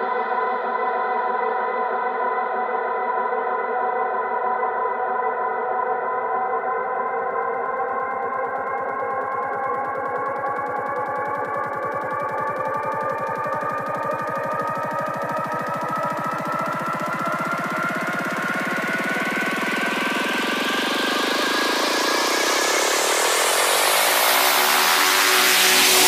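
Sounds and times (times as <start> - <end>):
fast pulsing synth: 6.8 - 26.0
rising noise sweep: 7.1 - 26.0
held synthesizer tones: 7.2 - 26.0.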